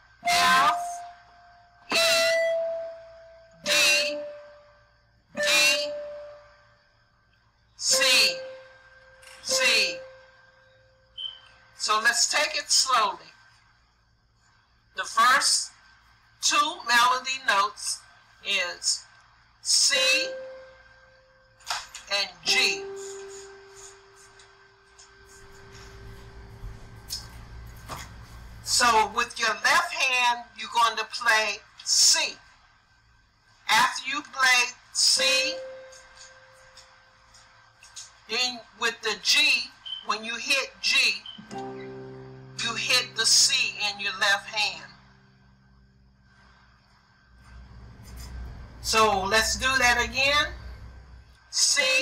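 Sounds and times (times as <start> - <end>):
electronic keyboard note: 0.2 - 1.1, 1.9 - 4.6, 5.4 - 6.4, 7.9 - 10.2, 22.5 - 27.6, 41.2 - 43.8
synthesizer melody notes: 22.5 - 27.4, 41.4 - 43.2
faint low rumble: 25.0 - 29.1, 42.0 - 51.5.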